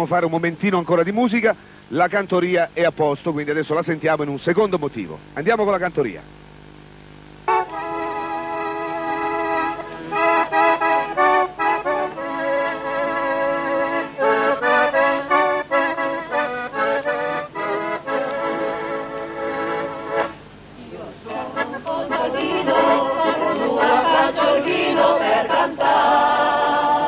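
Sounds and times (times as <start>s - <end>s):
accordions playing chords: 7.3s - 27.0s
choir singing: 7.6s - 16.4s, 17.6s - 27.0s.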